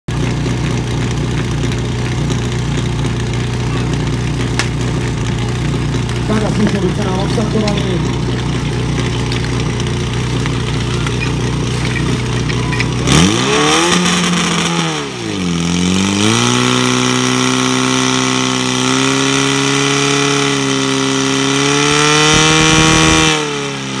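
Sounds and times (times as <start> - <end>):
fire pump engine revving: 0.1 - 24.0.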